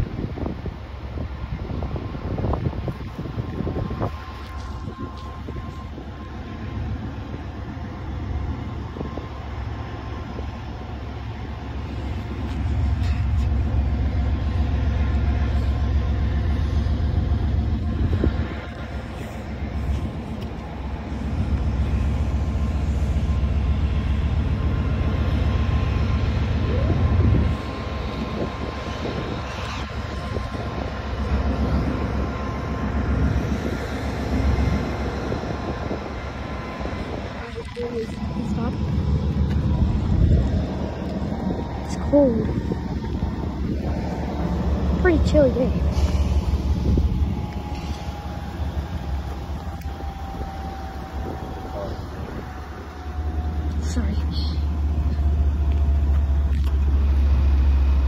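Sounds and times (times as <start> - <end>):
train wheels rumbling on rails: 0.0 - 58.0.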